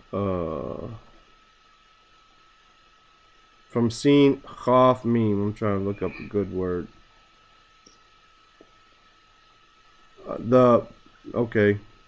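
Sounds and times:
recording line hiss: 0.0 - 12.0
thin high tone: 5.7 - 6.8.

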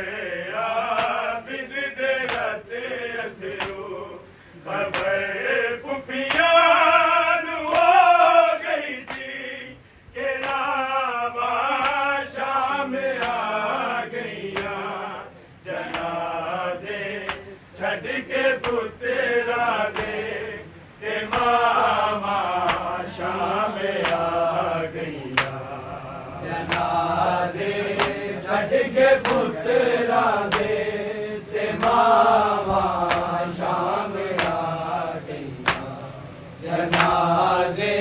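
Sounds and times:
men chanting a lament: 0.0 - 38.0.

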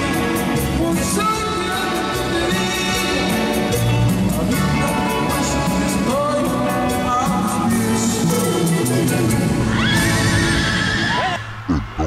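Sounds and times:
band music: 0.0 - 12.0.

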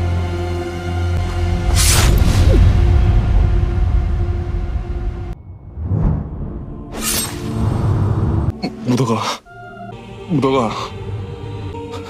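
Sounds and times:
low rumbling film score: 0.0 - 12.0.

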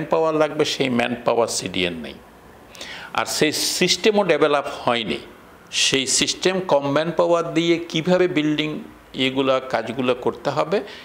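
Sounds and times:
man speaking: 0.0 - 2.3, 3.1 - 11.0.

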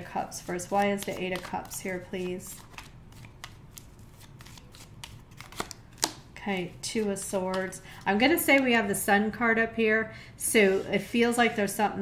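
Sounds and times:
cards being shuffled: 0.3 - 6.3.

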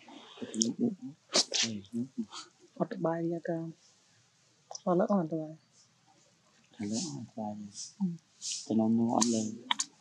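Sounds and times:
people talking: 0.0 - 3.7, 4.7 - 5.6, 6.8 - 9.9.

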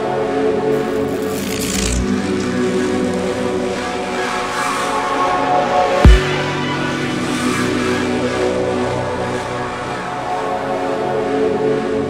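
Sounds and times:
synth drones and pads: 0.0 - 12.0.

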